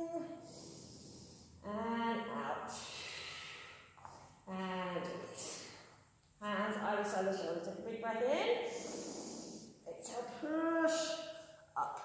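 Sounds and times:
breathy exhale: 0:00.4 - 0:01.6, 0:02.8 - 0:04.0, 0:08.7 - 0:09.8.

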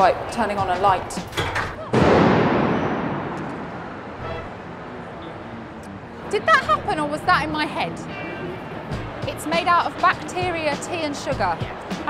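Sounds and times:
loud boom: 0:01.9 - 0:04.4.

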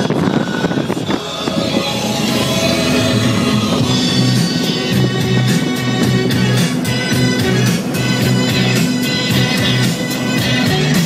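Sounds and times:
music playing: 0:00.0 - 0:11.0
wind and road noise in car: 0:00.0 - 0:11.0.

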